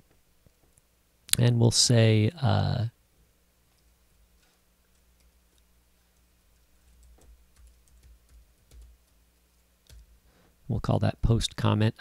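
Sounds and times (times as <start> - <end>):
low steady hum: 0.0 - 12.0
computer keyboard typing: 4.9 - 10.2.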